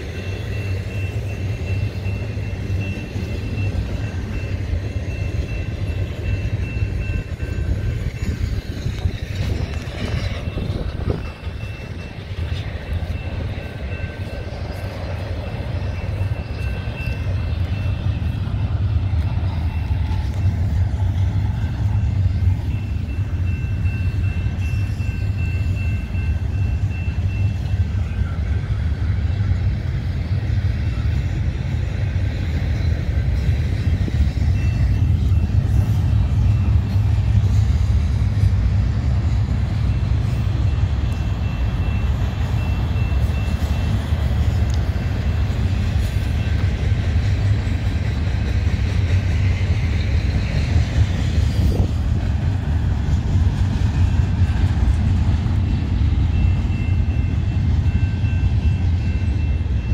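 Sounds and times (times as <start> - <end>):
train cars rumbling on rails: 0.0 - 59.9.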